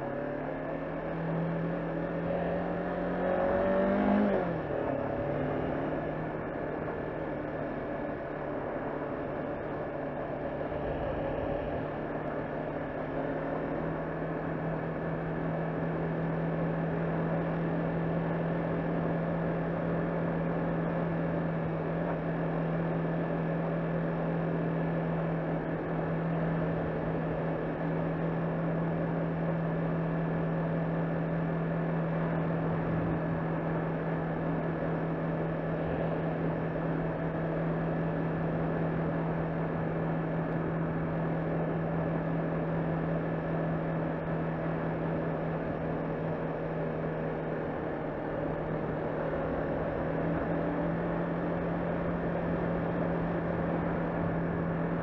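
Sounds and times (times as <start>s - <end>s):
motorcycle engine running: 0.0s - 55.0s
road noise: 0.0s - 55.0s.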